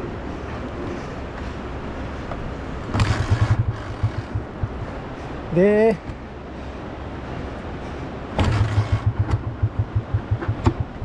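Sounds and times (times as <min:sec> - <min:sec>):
vehicle engine rumbling: 0:00.0 - 0:11.0
uneven low thumping: 0:02.9 - 0:05.2, 0:08.4 - 0:11.0.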